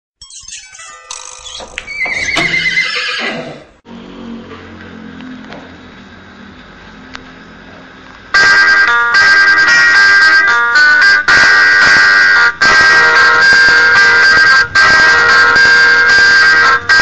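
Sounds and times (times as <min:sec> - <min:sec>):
loud music with bright notes: 0:00.2 - 0:01.9
horse whinny: 0:01.6 - 0:03.8.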